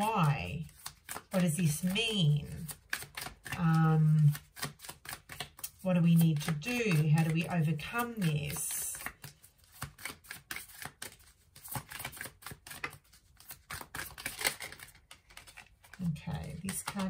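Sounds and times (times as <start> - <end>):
cards being shuffled: 0.0 - 17.0.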